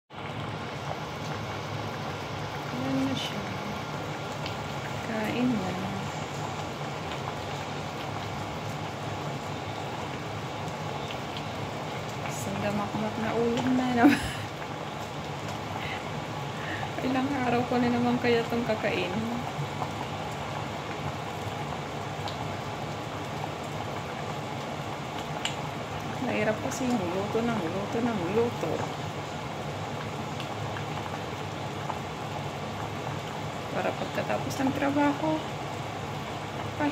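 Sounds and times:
soup bubbling in a pot: 0.1 - 36.9
low steady hum: 0.2 - 36.9.

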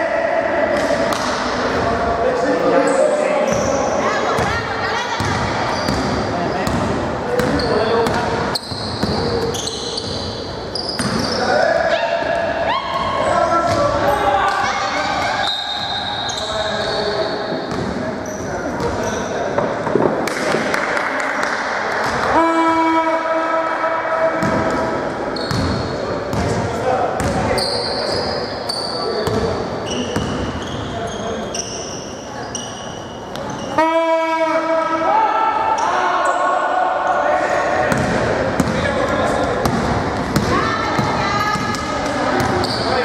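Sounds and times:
sneakers squeaking: 2.5 - 19.9, 24.4 - 33.8, 37.8 - 43.0
basketball bouncing on wooden court: 5.2 - 8.3, 25.4 - 26.6, 27.2 - 27.5, 37.9 - 42.9.

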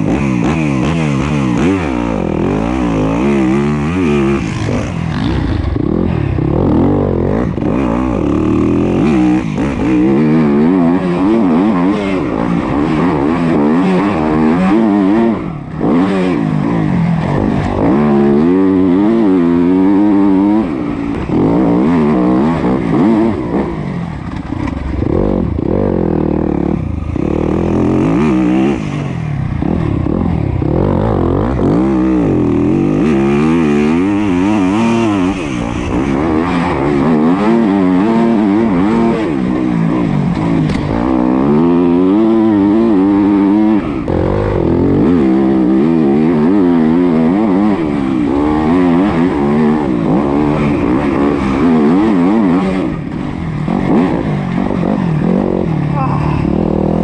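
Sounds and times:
motocross bike engine revving: 0.0 - 57.0.

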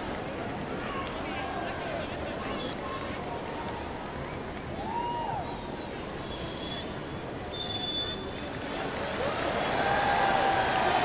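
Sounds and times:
stadium crowd noise: 0.0 - 11.0
high-pitched whistle blasts: 6.2 - 8.5.

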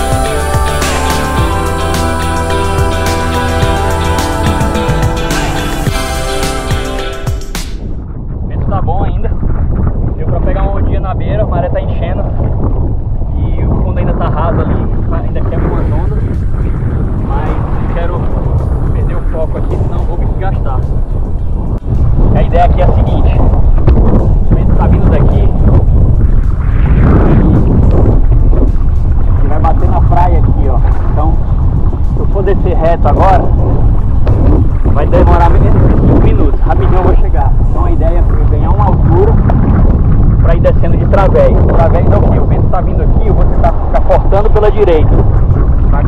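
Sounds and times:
strong wind buffeting microphone: 0.0 - 46.0.

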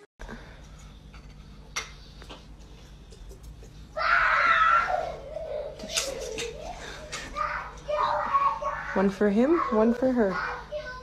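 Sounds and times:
child squealing: 4.0 - 6.7
child vocal sounds: 4.0 - 11.0.

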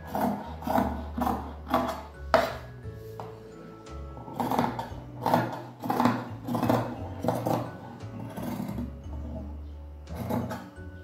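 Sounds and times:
shears snipping fabric: 0.0 - 2.1.

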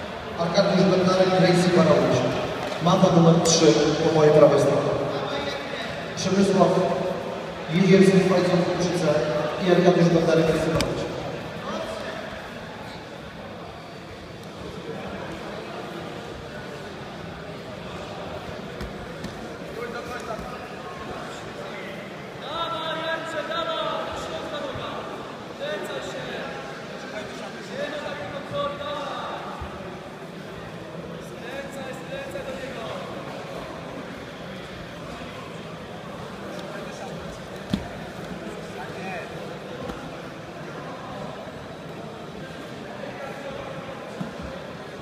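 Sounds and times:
indistinct voices and chatter: 0.0 - 45.0.

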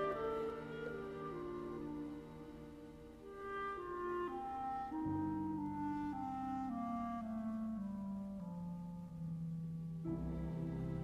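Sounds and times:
chamber music with clarinet: 0.0 - 11.0.

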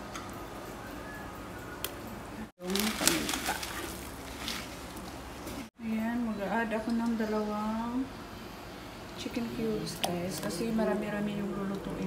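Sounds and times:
peppercorns clicking: 2.6 - 5.2
plastic packet crinkling: 2.6 - 5.2.

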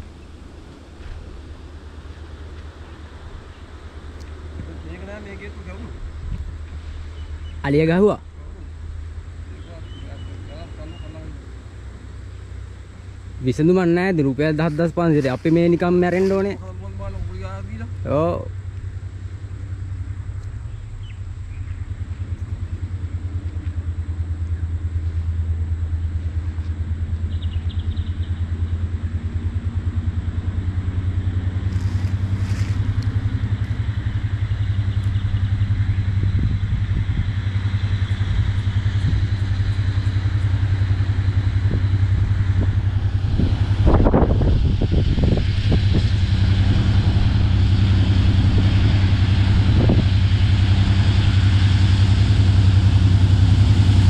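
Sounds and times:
diesel locomotive engine drone: 0.0 - 54.0.

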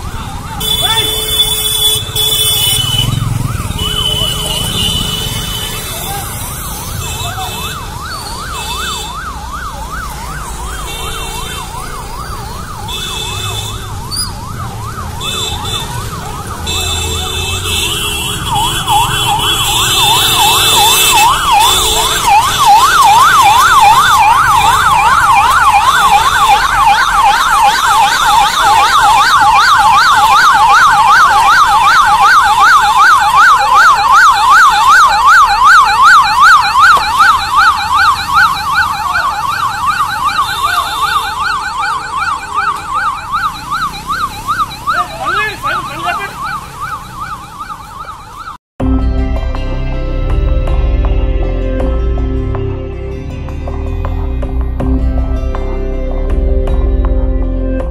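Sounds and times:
police siren yelping: 0.0 - 48.6.

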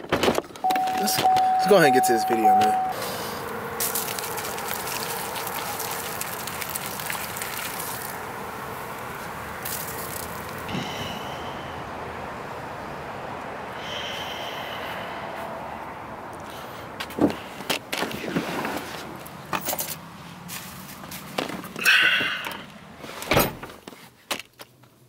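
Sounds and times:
soda pouring onto leaves: 3.8 - 8.2, 9.6 - 10.6.

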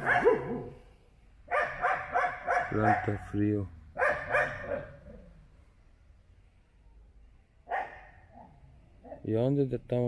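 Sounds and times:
dog barking: 0.0 - 0.8, 1.5 - 3.2, 4.0 - 5.0, 7.7 - 9.2.

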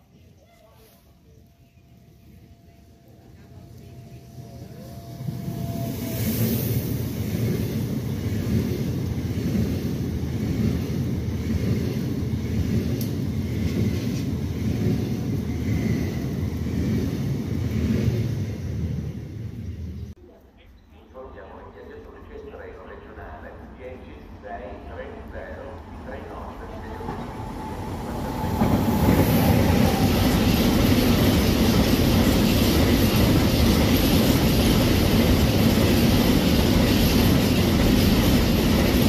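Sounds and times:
electric train passing at speed: 2.1 - 20.1, 21.6 - 39.0.

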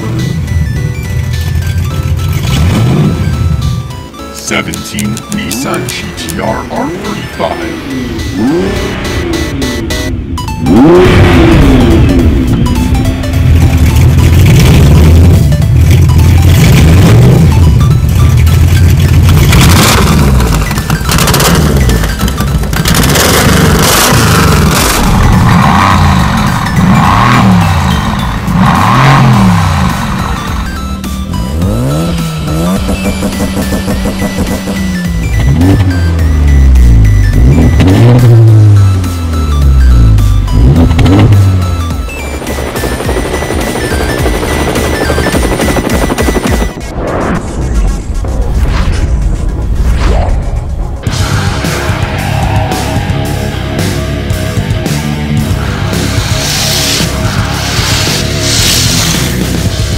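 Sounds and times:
sports car engines revving: 0.0 - 4.0, 5.0 - 46.6, 51.2 - 59.9
background music: 0.0 - 59.9.

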